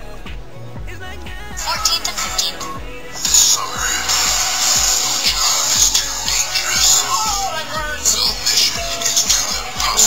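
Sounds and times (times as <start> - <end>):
music through small phone speaker: 0.0 - 10.0.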